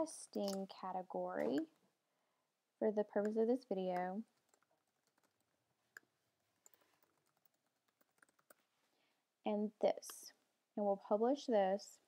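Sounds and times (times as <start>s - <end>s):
keyboard typing: 3.2s - 8.7s.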